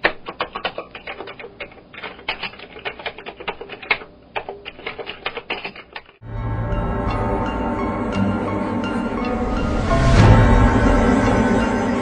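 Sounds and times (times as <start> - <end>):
fast typing on laptop keyboard: 0.0 - 6.2.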